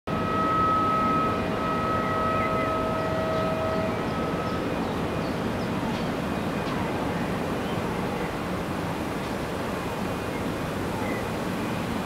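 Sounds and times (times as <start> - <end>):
high steady whine: 0.1 - 6.2
distant industrial plant rumble: 0.1 - 12.0.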